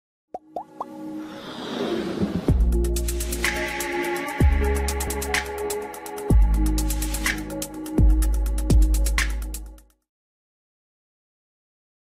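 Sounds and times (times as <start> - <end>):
whoosh: 1.2 - 2.9.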